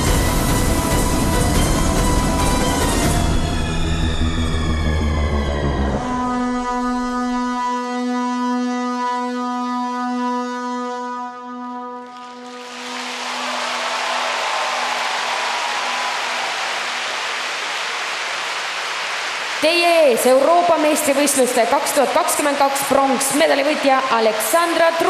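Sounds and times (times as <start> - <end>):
crowd applauding: 12.0 - 21.5.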